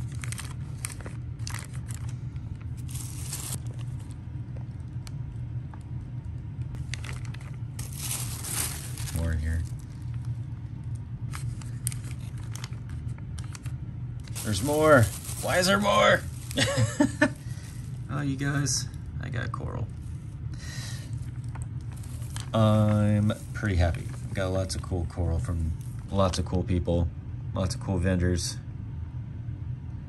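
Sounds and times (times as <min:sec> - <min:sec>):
plastic bags crinkling: 0:00.0 - 0:02.2, 0:02.8 - 0:04.2, 0:06.8 - 0:10.3, 0:11.3 - 0:18.7, 0:21.0 - 0:25.0
low room hum: 0:00.0 - 0:30.0.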